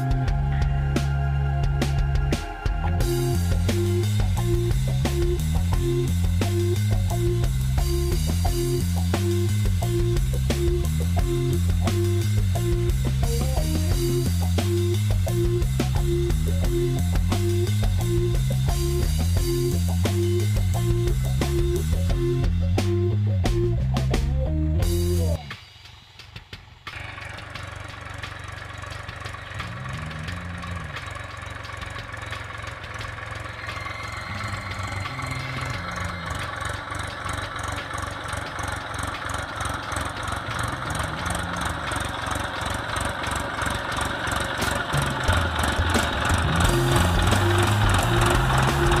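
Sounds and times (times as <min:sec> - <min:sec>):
tractor diesel engine running: 0:00.0 - 0:25.6, 0:26.8 - 0:49.0
music: 0:00.0 - 0:31.2, 0:32.8 - 0:37.9, 0:44.6 - 0:49.0.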